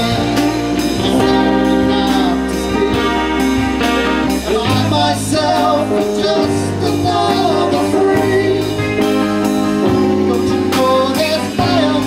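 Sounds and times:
live band playing: 0.0 - 12.0
sung lead vocal: 0.0 - 12.0.

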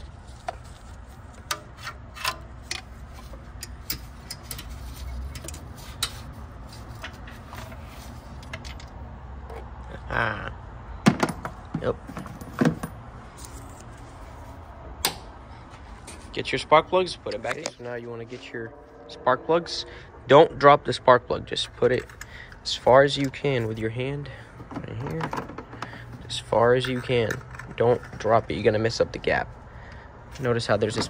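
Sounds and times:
low background rumble: 0.0 - 31.0.

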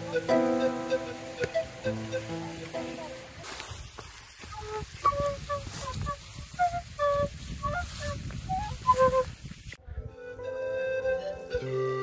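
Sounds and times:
small flute playing tune: 0.0 - 3.2, 4.5 - 9.4, 10.0 - 12.0.

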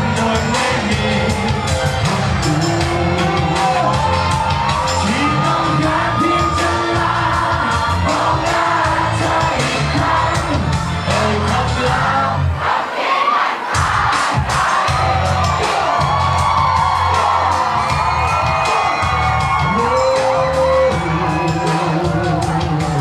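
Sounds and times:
performers' voices on microphones: 0.0 - 12.6, 13.8 - 23.0
crowd cheering and whooping: 0.0 - 23.0
live pop music with heavy bass: 0.0 - 23.0.

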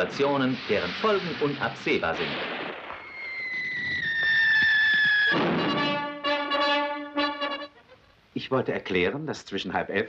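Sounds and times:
long whistle sliding down: 3.0 - 6.0.

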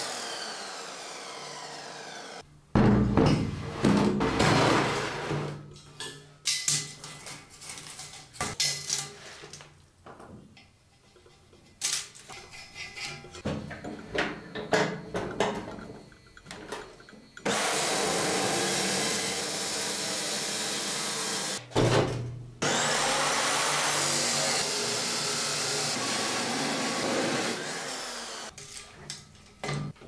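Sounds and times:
chop saw grinding through steel: 0.0 - 2.4, 22.6 - 28.6.

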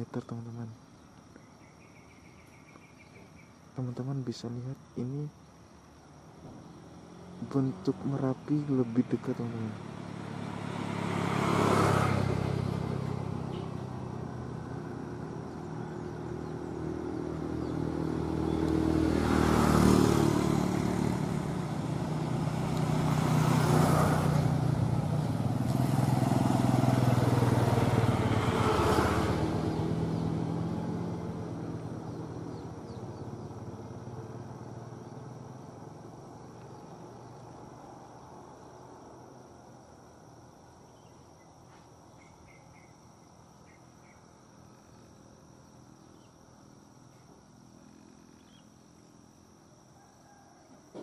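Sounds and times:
motorcycles passing by: 6.2 - 49.5.

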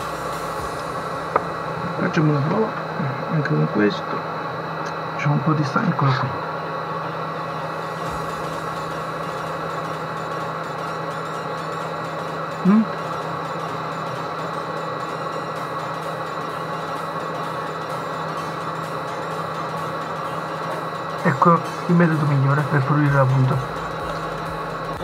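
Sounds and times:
faint whining tones: 0.0 - 25.0
steady background hum: 0.0 - 25.0.

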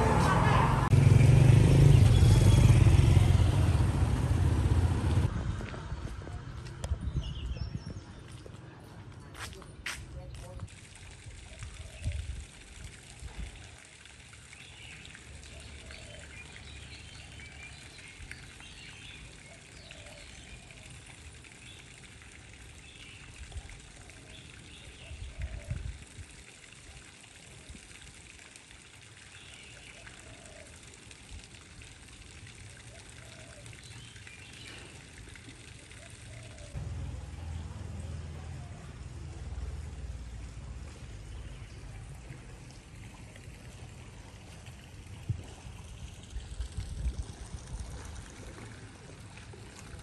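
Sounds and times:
pool water trickling: 6.4 - 50.0.

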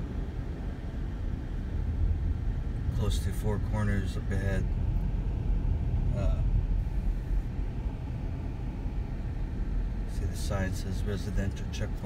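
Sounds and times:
car driving on asphalt: 0.0 - 12.0.

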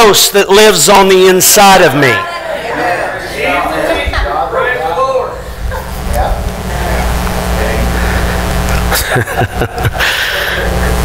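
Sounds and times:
steady low hum: 5.3 - 11.0
man laughing: 8.6 - 11.0.

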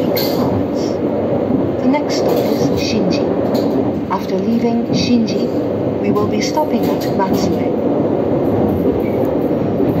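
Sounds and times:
train rumbling inside passenger car: 0.0 - 10.0.

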